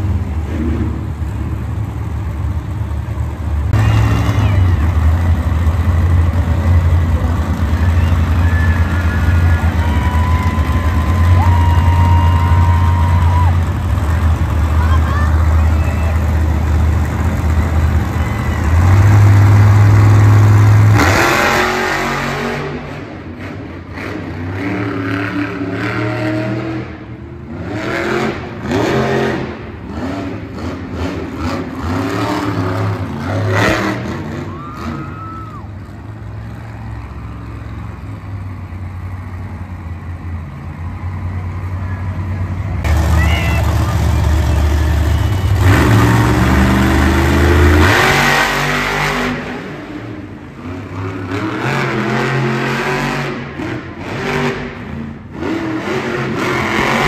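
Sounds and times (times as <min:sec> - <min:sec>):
truck engine revving hard: 0:03.6 - 0:35.2, 0:42.8 - 0:57.0.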